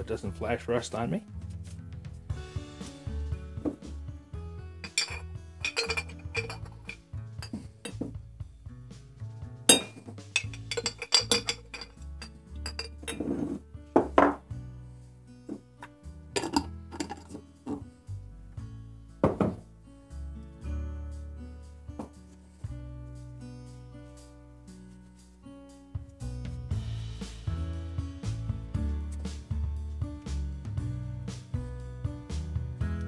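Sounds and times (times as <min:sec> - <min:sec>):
background music: 0:00.0 - 0:33.0
metal bit clinking against glass jar: 0:04.8 - 0:08.0, 0:09.7 - 0:13.3, 0:16.4 - 0:17.8.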